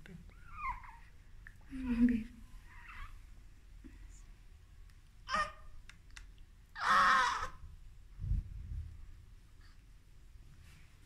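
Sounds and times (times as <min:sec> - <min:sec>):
newborn baby crying: 0:00.3 - 0:01.2, 0:02.6 - 0:03.3, 0:05.2 - 0:05.8, 0:06.7 - 0:07.7
soft low thumps: 0:08.2 - 0:09.2.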